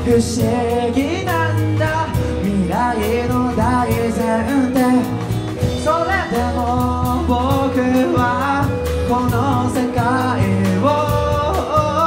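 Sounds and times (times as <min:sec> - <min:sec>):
male lead vocal singing: 0:00.0 - 0:12.0
rock band playing: 0:00.0 - 0:12.0.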